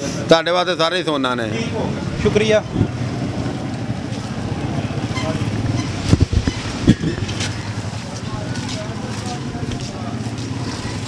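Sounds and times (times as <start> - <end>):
low engine rumble: 1.3 - 11.0.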